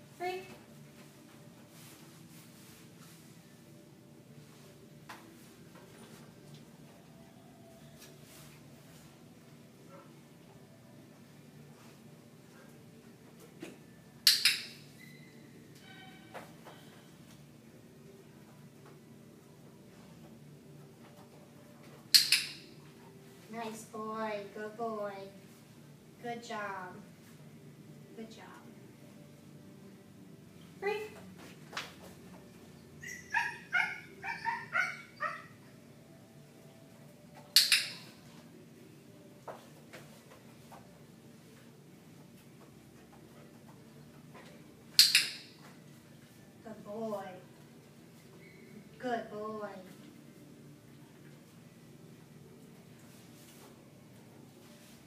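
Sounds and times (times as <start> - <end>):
dog yipping: 33.0 - 35.6.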